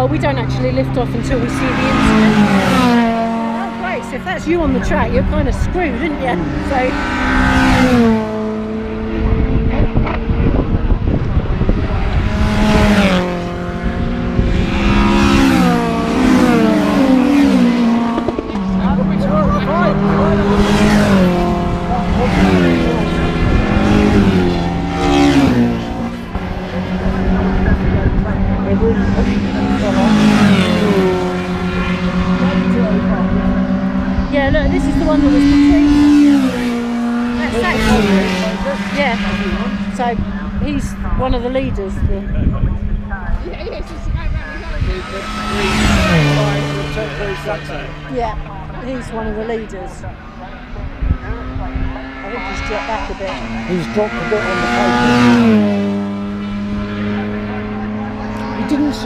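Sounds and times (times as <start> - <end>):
racing cars passing at speed: 0.0 - 59.0.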